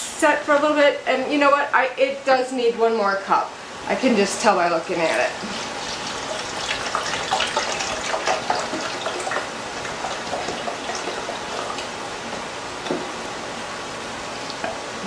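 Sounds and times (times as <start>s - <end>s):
vegetables sizzling in a pan: 5.0s - 12.0s
broth pouring into a cup: 5.2s - 12.0s.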